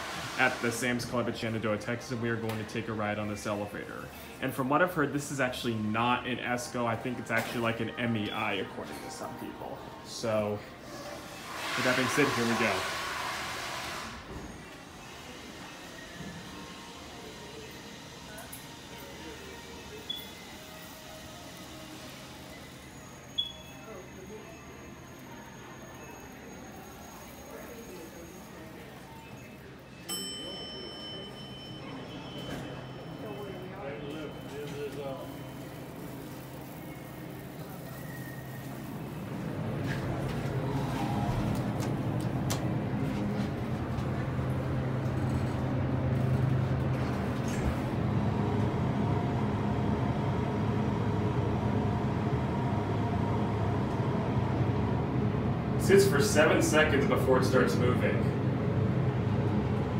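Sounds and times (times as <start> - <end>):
elevator machinery hum: 13.2 - 59.9
elevator arrival chime: 19.4 - 39.4.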